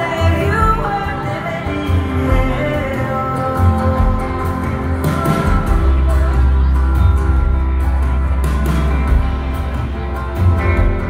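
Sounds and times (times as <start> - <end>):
live band playing guitars and drums: 0.0 - 11.0.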